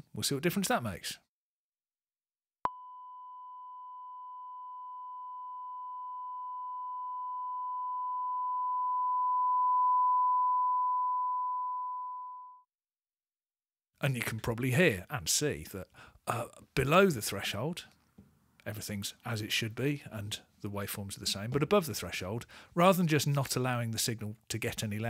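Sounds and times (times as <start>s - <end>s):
sine test tone: 2.7s - 12.7s.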